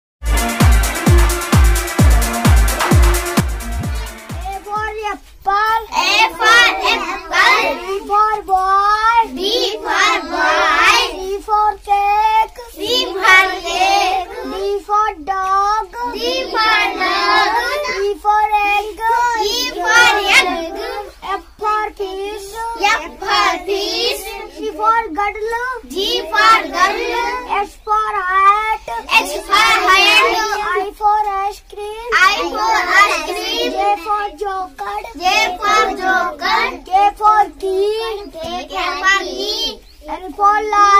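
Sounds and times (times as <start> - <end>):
boy chanting in sing-song voice: 4.1 - 40.9.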